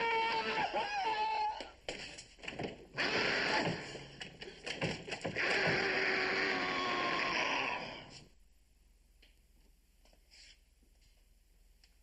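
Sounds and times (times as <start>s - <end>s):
loud clattering din: 1.6s - 7.3s.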